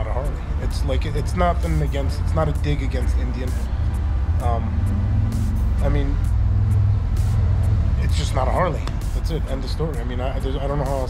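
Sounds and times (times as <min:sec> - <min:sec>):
background music: 0:00.0 - 0:11.0
vehicle engine rumbling: 0:00.0 - 0:11.0.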